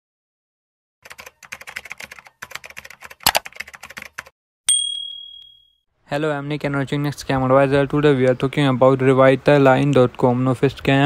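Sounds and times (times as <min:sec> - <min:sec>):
keyboard key clicks: 0:03.2 - 0:03.5
bell ding: 0:04.7 - 0:05.8.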